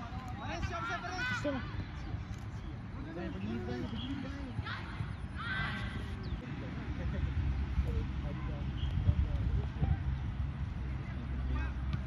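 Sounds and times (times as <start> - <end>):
players shouting: 0.0 - 2.0
wind rumble on microphone: 1.8 - 12.0.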